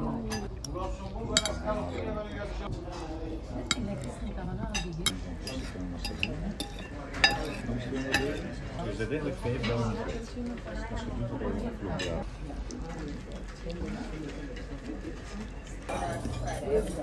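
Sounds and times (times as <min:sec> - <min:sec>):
murmur of voices: 0:00.0 - 0:17.0
cutlery clinking on plates: 0:00.2 - 0:01.7, 0:03.6 - 0:08.8.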